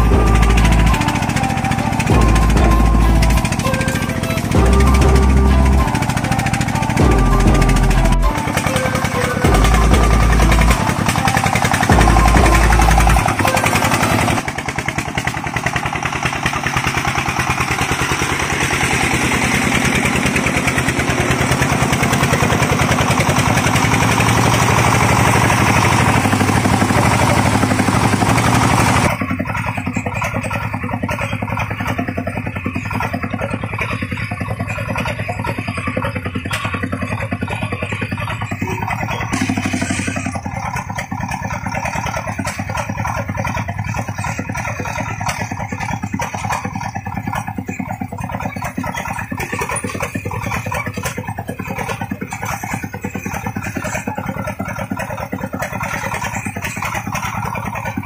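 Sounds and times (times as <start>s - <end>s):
diesel engine chugging: 0.0s - 58.0s.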